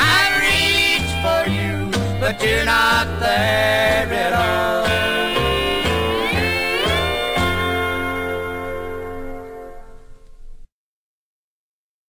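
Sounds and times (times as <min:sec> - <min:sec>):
country band final chord: 0:00.0 - 0:10.0
steel guitar sliding upward: 0:00.4 - 0:10.2.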